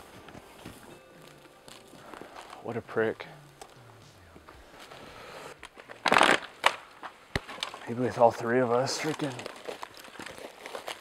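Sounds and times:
boots crunching in dry sand: 8.6s - 11.0s.

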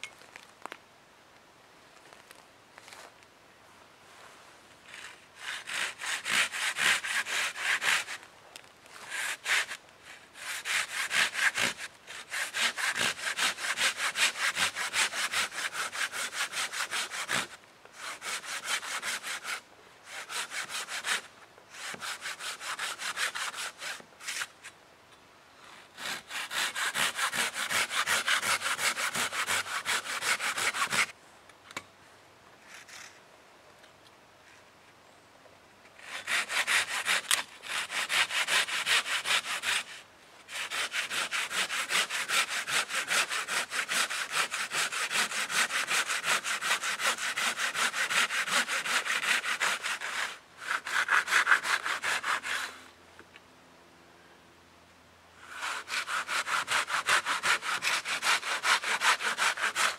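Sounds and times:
hand saw rasping through wood: 5.0s - 8.2s, 9.1s - 24.5s, 26.0s - 31.1s, 36.0s - 52.8s, 55.4s - 59.9s.

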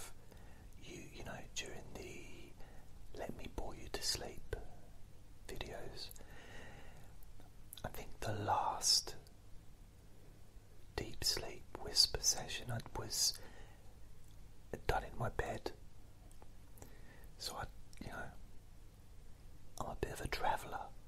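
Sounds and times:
man whispering: 0.0s - 0.2s, 0.8s - 6.2s, 7.8s - 9.3s, 11.0s - 13.5s, 14.7s - 15.8s, 17.4s - 18.4s, 19.8s - 21.0s.

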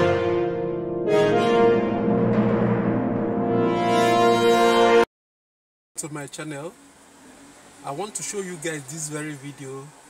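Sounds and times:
long held music chord: 0.0s - 5.0s.

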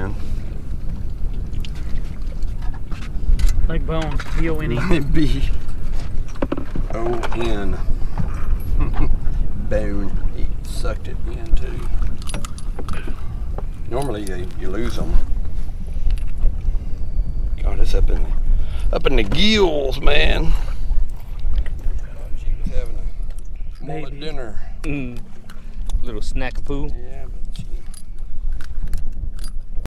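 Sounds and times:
steady low rumble: 0.0s - 29.9s
wind buffeting microphone: 0.0s - 29.9s.

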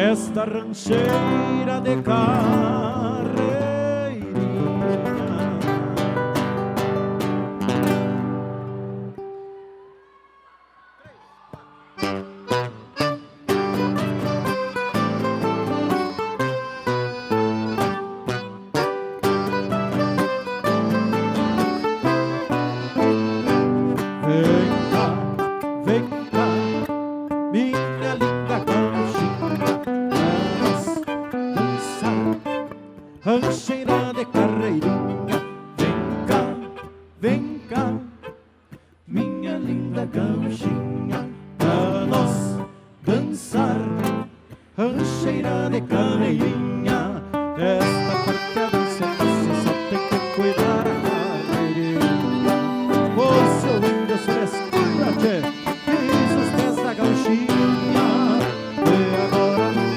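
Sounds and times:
strummed acoustic guitar: 0.0s - 9.3s, 12.0s - 59.9s
violin: 12.0s - 27.0s, 28.1s - 38.4s, 45.4s - 59.9s
folk band playing dance music: 12.0s - 38.2s, 47.8s - 59.9s
singing: 39.1s - 44.0s, 53.2s - 59.9s.

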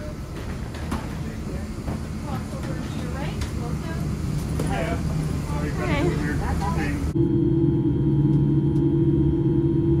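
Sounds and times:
steady low rumble: 1.6s - 10.0s.

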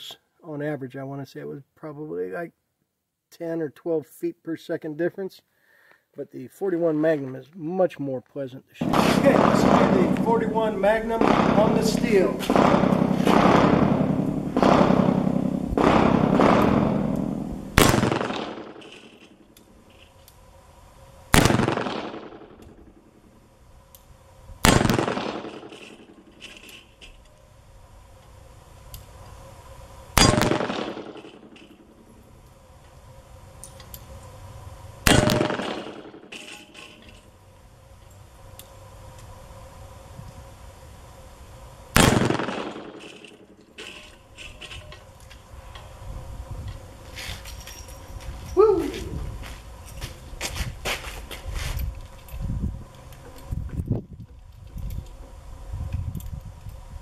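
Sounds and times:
revolver shots with echo: 8.8s - 19.2s, 30.2s - 31.8s, 35.1s - 36.7s.

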